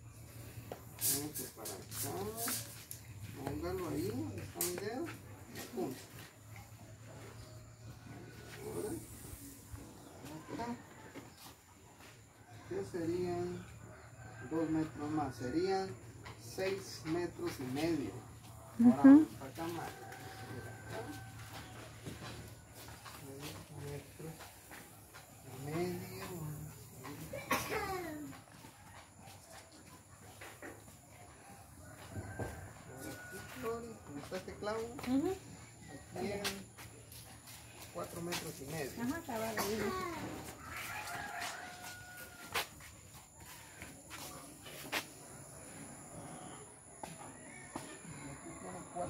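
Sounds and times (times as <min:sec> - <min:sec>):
rooster crowing: 0:07.1 - 0:15.9, 0:17.8 - 0:24.0, 0:30.6 - 0:36.9, 0:38.7 - 0:49.0.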